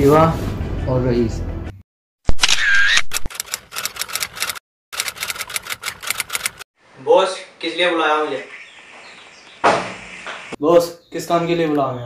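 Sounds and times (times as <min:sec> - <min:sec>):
typewriter keys clicking: 0:03.3 - 0:06.6.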